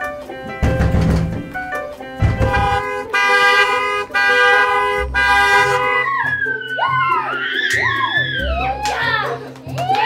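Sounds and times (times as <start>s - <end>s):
low thump: 2.2s - 2.9s
car horn honking: 2.2s - 6.1s.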